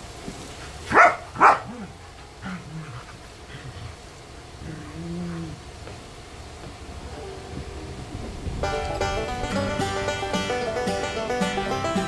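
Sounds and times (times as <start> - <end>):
puppy making low vocal sounds: 1.7 - 5.7.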